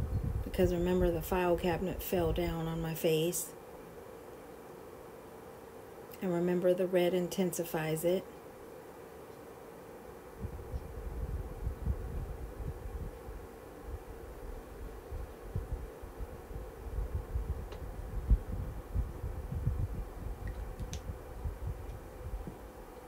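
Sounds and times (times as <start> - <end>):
faint electrical hum: 0.0 - 23.0.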